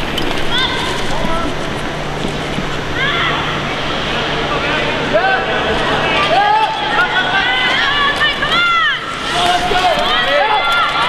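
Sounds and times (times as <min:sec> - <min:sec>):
spectators shouting and cheering: 0:02.9 - 0:11.0
skate blades scraping ice: 0:07.8 - 0:11.0.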